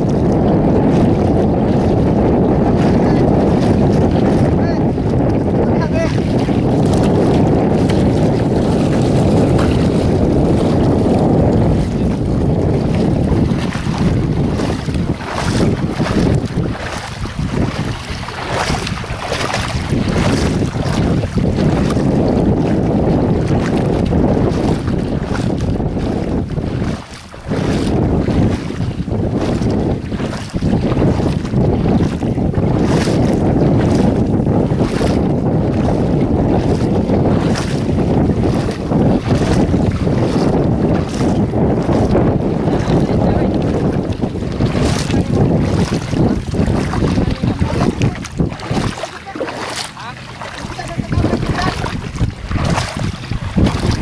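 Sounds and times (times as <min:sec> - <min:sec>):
water splashing from wading: 0:00.0 - 0:54.0
wind buffeting microphone: 0:00.0 - 0:54.0.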